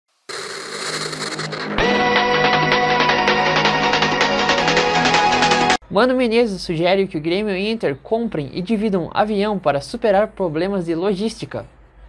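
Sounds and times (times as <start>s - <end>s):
electronic theme music: 0.3s - 5.8s.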